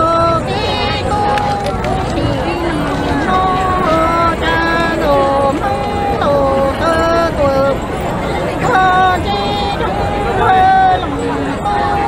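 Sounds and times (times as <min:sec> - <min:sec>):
crowd chatter: 0:00.0 - 0:12.0
person singing long level notes: 0:00.0 - 0:12.0.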